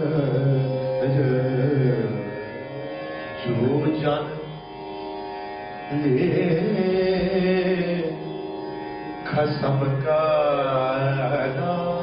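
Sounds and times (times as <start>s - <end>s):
man singing devotional melody: 0.0s - 4.8s, 5.8s - 12.0s
bowed strings: 0.0s - 12.0s.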